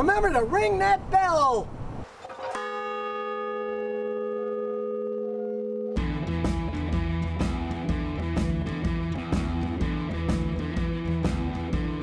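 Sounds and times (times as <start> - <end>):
large bell ringing: 2.4 - 6.4.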